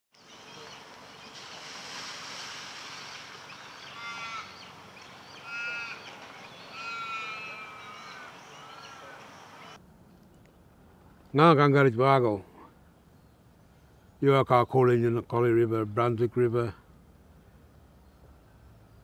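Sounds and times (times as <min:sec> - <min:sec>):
bird calls: 0:00.2 - 0:02.1, 0:02.8 - 0:09.8
river hiss: 0:00.2 - 0:09.8.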